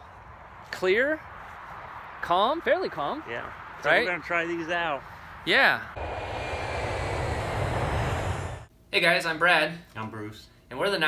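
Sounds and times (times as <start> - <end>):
aircraft rushing with deep rumble: 5.8 - 8.7.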